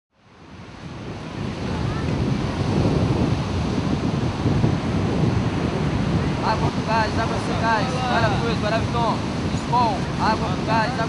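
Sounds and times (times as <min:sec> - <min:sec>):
ocean surf breaking: 0:00.3 - 0:11.0
wind buffeting microphone: 0:00.3 - 0:11.0.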